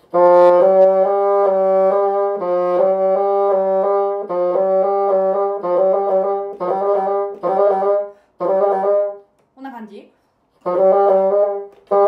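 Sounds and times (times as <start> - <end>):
bassoon playing: 0.0 - 9.3, 10.5 - 12.0.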